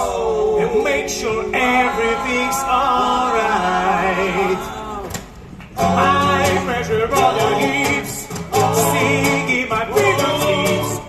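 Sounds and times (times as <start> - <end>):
men singing: 0.0 - 5.2, 5.8 - 11.0
acoustic guitars: 0.4 - 11.0.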